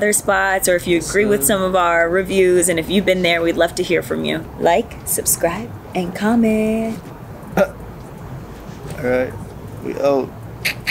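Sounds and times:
low background hiss: 0.0 - 10.9.

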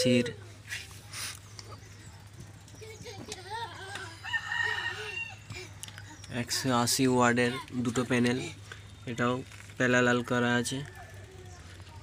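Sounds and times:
rooster crowing: 4.1 - 5.6.

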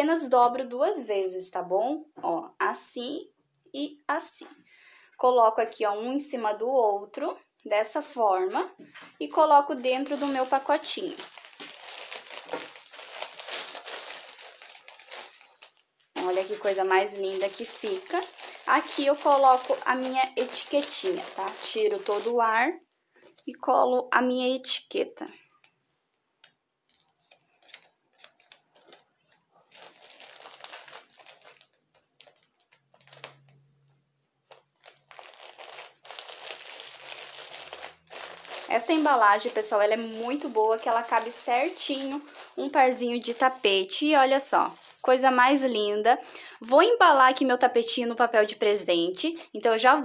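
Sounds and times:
plastic bag crinkling: 8.8 - 22.6, 25.3 - 46.4.

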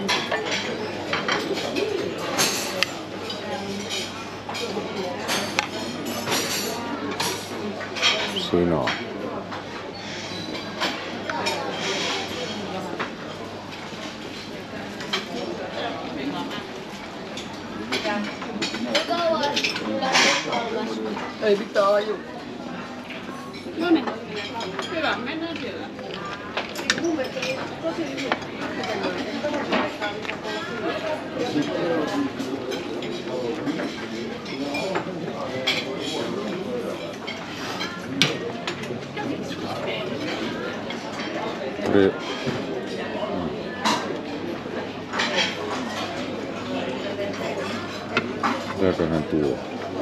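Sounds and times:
dishes and cutlery clinking: 0.0 - 22.1, 23.0 - 49.9
diners chattering: 0.0 - 50.0
people talking: 8.3 - 9.0.

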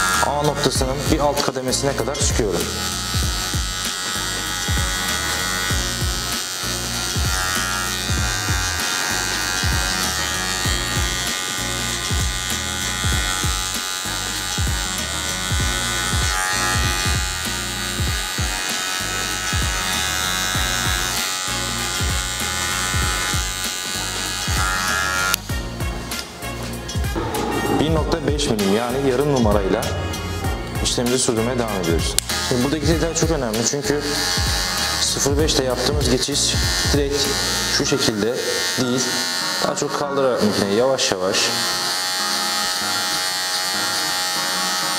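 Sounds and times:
hair clipper buzzing: 0.0 - 0.4, 1.1 - 26.3, 32.1 - 44.9
background music: 0.0 - 44.9.

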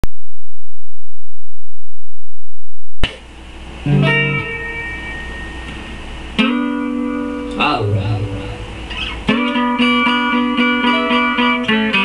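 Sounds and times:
guitar struck and ringing: 3.8 - 12.0.

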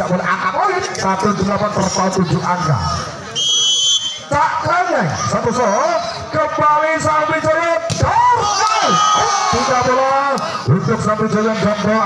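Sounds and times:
referee's whistle blast: 3.4 - 4.3
commentator speaking: 8.8 - 12.0.

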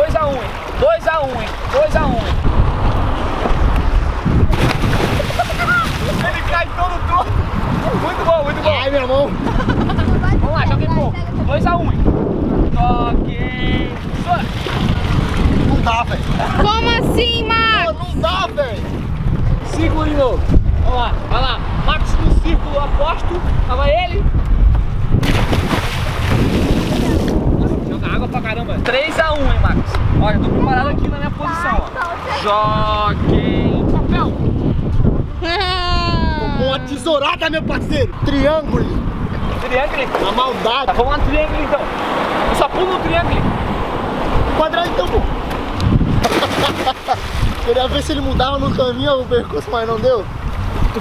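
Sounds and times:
churning water: 0.0 - 23.8, 25.1 - 34.2, 36.6 - 51.0
wind buffeting microphone: 0.0 - 51.0
body splashing onto water: 4.4 - 6.4, 14.0 - 16.5, 25.2 - 27.4, 46.2 - 47.8.

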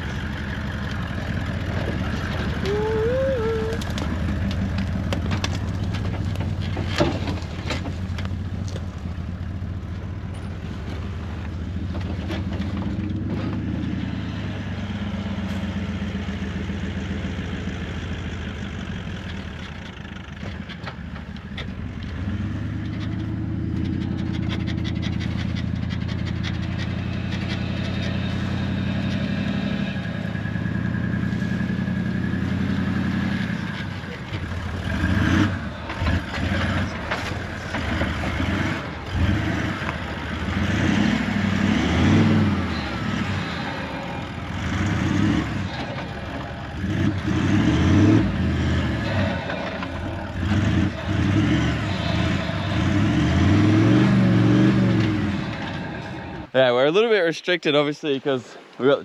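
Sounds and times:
vehicle engine revving in sand: 10.6 - 20.4, 21.7 - 56.6.

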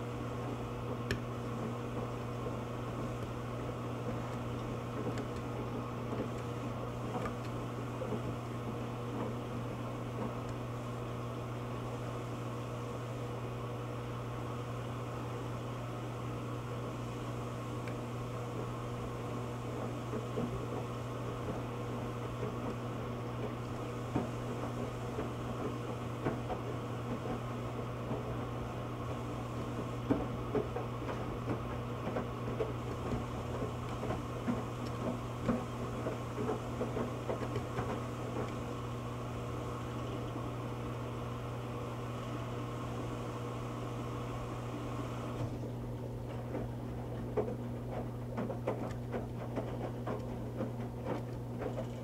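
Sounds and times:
washing machine motor hum: 0.0 - 52.0.

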